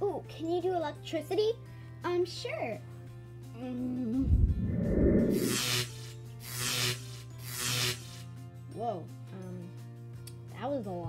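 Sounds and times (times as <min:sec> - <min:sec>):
quiet background music: 0:00.0 - 0:11.0
harsh hissing electric zaps: 0:05.2 - 0:08.4.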